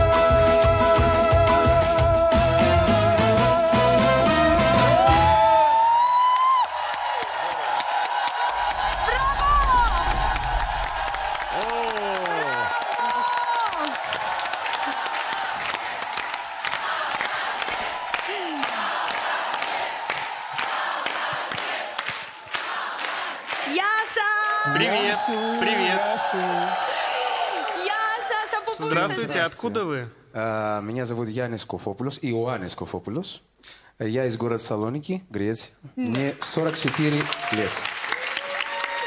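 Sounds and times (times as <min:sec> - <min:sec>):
audience cheering and whooping: 0:04.2 - 0:22.0, 0:23.7 - 0:29.5, 0:37.2 - 0:39.0
crowd shouting: 0:04.8 - 0:22.0, 0:24.6 - 0:29.5
crowd clapping: 0:05.0 - 0:29.5, 0:36.0 - 0:39.0.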